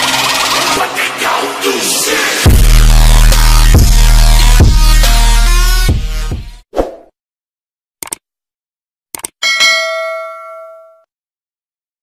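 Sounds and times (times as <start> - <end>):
bright bell ding: 9.4 - 11.1.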